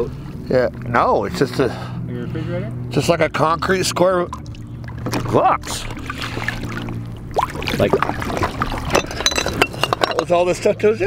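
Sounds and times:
low hum: 0.0 - 11.0
water lapping: 4.0 - 10.0
glass bottles clinking: 7.7 - 10.7.

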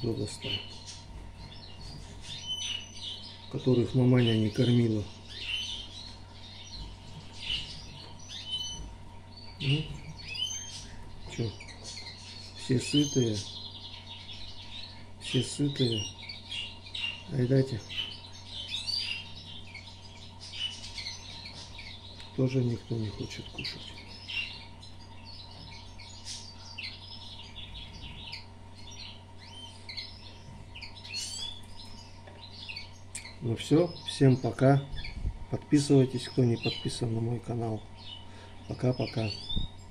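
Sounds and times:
faint steady hum: 0.0 - 39.9
small songbirds chirping: 0.0 - 39.9.

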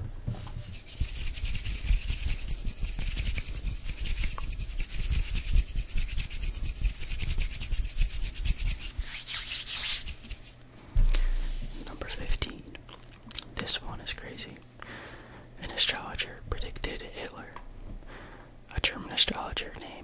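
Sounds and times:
hands rubbing together: 0.6 - 10.6
soft low thuds: 10.9 - 12.1.

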